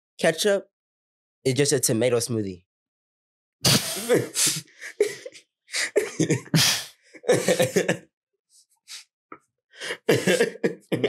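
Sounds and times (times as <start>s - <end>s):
burst of laughter: 3.7s - 8.0s, 9.9s - 11.0s.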